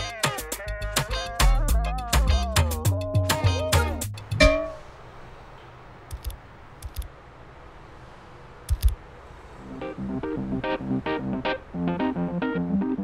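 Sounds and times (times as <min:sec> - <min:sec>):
music: 0:00.0 - 0:04.5, 0:09.6 - 0:13.0
street background hiss: 0:00.0 - 0:13.0.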